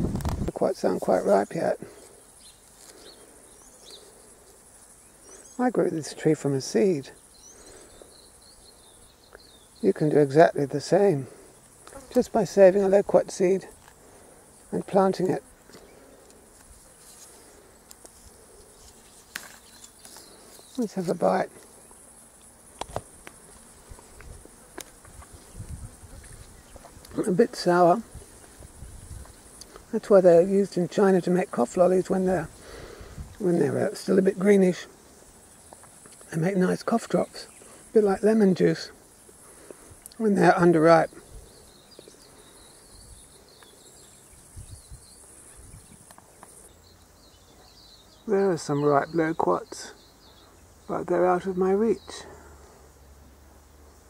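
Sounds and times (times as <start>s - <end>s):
insects chirring: 0.0s - 54.0s.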